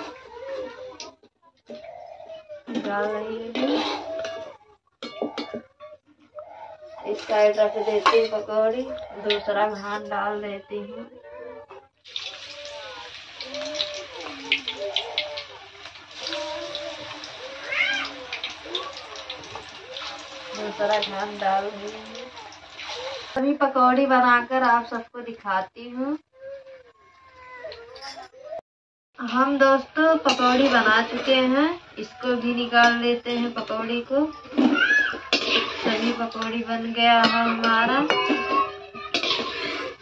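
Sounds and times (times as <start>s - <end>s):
hot oil sizzling in a wok: 12.0s - 23.4s, 39.2s - 39.9s
meowing calls: 16.2s - 20.5s.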